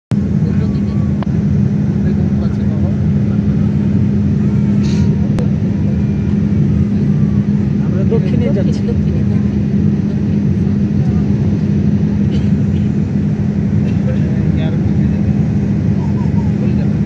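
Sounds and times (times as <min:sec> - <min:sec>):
jet cabin engine drone: 0:00.1 - 0:17.0.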